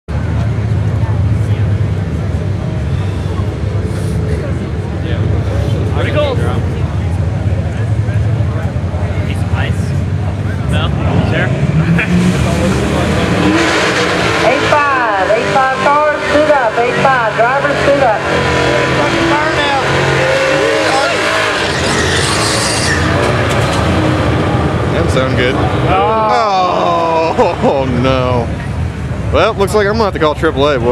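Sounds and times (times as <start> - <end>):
drag car engines rumbling: 0.1 - 30.9
spectators talking: 0.1 - 30.9.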